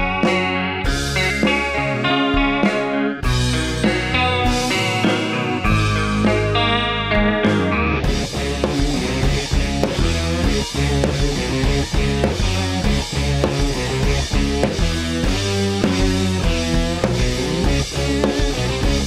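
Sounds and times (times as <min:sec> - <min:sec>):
band accompaniment: 0:00.0 - 0:19.0
overdriven electric guitar solo: 0:00.0 - 0:19.0
sustained bass notes: 0:00.0 - 0:19.0.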